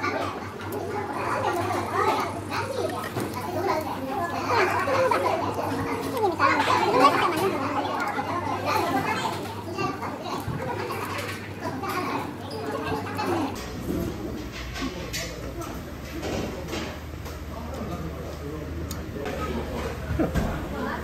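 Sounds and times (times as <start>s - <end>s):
children playing and talking: 0.0s - 21.0s.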